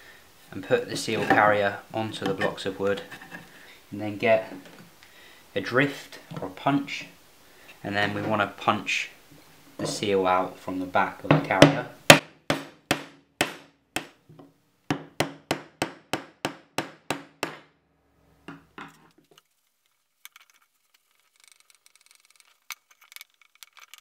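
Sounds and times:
hammer striking a metal punch: 0:11.3 - 0:14.2.

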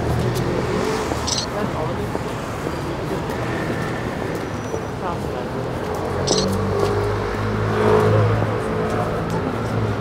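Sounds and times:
road traffic rumble: 0:00.0 - 0:10.0
voices of passers-by: 0:00.0 - 0:10.0.

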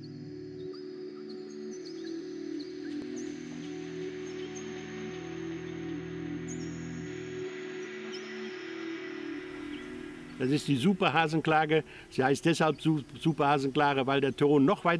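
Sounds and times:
ambient music with sustained chords: 0:00.0 - 0:14.9.

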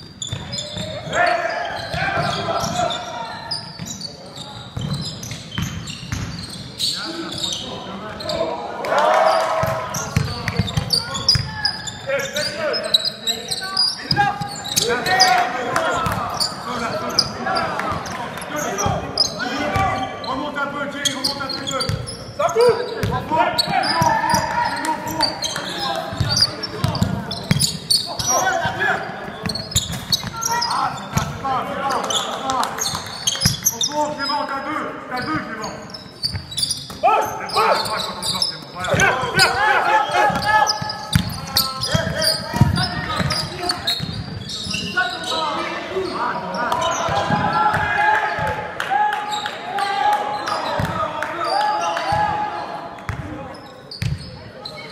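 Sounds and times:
voices echoing in hall: 0:00.0 - 0:54.9
basketball bouncing on wooden court: 0:00.2 - 0:01.1, 0:04.6 - 0:06.7, 0:09.6 - 0:11.7, 0:16.0 - 0:16.6, 0:23.0 - 0:31.4, 0:40.3 - 0:44.4, 0:53.1 - 0:53.3, 0:54.0 - 0:54.3.

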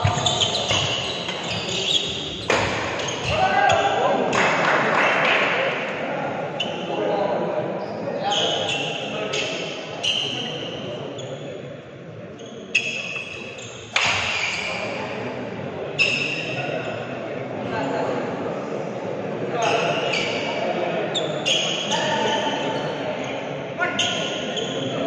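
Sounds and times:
shoes squeaking on court floor: 0:00.0 - 0:03.9, 0:12.4 - 0:15.0, 0:19.6 - 0:23.0
spectators chattering: 0:00.0 - 0:25.0.

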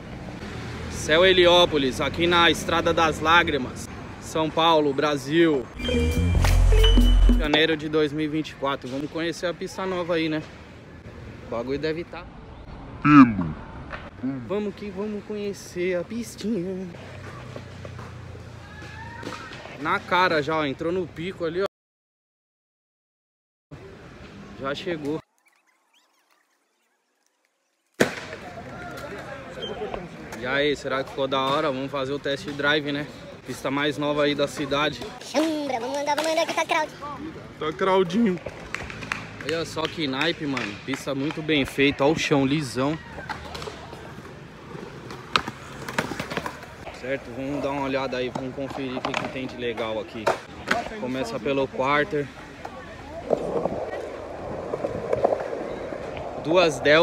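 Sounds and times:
sharp crack: 0:27.9 - 0:29.1
crowd voices: 0:28.0 - 0:39.6, 0:40.3 - 0:57.0
skateboards clacking on concrete: 0:34.4 - 0:51.4, 0:52.3 - 0:56.9
skateboard wheels rattling: 0:42.6 - 0:47.6, 0:52.3 - 0:57.0.

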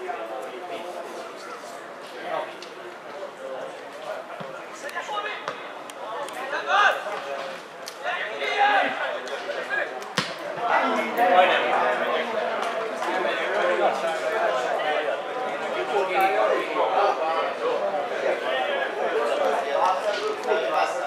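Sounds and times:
ball kick thump: 0:10.2 - 0:10.4.

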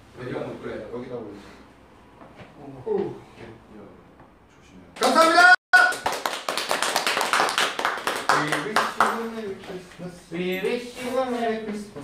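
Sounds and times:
people clapping: 0:05.0 - 0:09.5.

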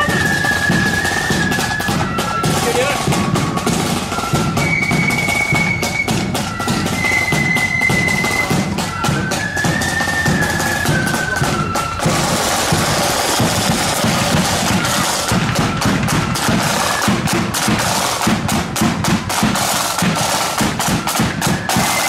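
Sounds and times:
faint flute melody: 0:00.0 - 0:22.0
snare and bass drums marching: 0:00.0 - 0:22.0.

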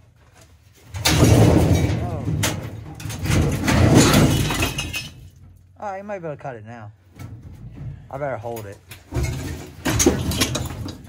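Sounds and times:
sheet metal scraping and rattling: 0:00.7 - 0:05.7, 0:07.1 - 0:11.0.

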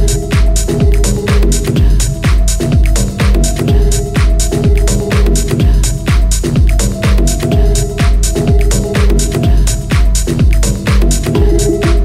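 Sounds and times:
hi-hats: 0:00.0 - 0:12.0
techno kick drum: 0:00.0 - 0:12.0
held synth tone: 0:03.4 - 0:09.7, 0:11.3 - 0:12.0.

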